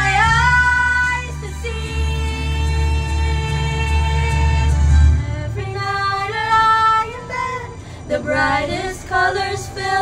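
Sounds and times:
girls singing a duet: 0.0 - 10.0.

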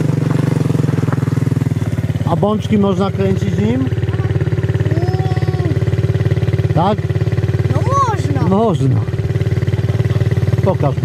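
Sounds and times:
quad engine idling: 0.0 - 11.0.

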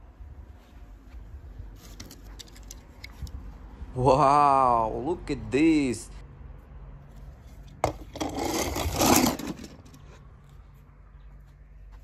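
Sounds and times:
rasping scrape: 7.3 - 10.2.

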